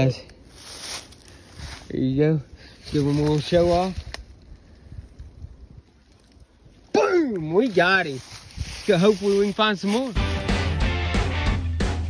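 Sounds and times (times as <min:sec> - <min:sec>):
wind buffeting microphone: 0:01.5 - 0:09.6
man's voice: 0:07.0 - 0:10.6.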